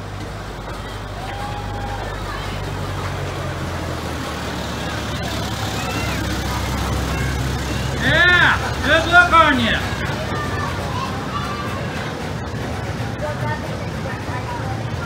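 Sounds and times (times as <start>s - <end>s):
faint voices: 0.0s - 15.0s
locomotive engine drone: 0.0s - 15.0s.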